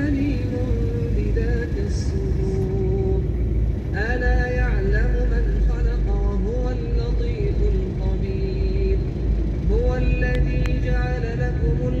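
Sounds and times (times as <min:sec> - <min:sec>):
man chanting melodic recitation: 0:00.0 - 0:03.3, 0:03.9 - 0:12.0
car rumble in traffic: 0:00.0 - 0:12.0.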